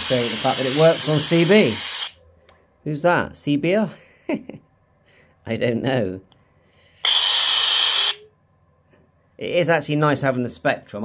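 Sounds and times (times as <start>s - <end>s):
radio static rush: 0.0s - 2.1s, 7.1s - 8.2s.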